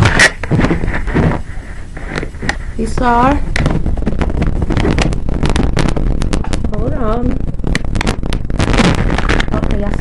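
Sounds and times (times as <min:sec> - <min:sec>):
camera handling rumble: 0:00.0 - 0:02.6, 0:03.4 - 0:06.7, 0:07.4 - 0:09.6.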